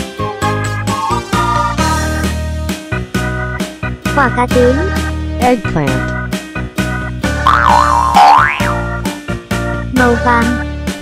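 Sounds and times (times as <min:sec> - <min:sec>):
background music with steady beat: 0:00.0 - 0:11.0
cartoon sound effect wobbling: 0:07.5 - 0:08.8.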